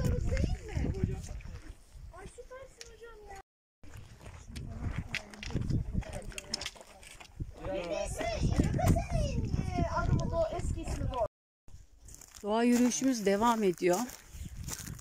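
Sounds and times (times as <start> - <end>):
people talking over one another: 5.5 - 11.3.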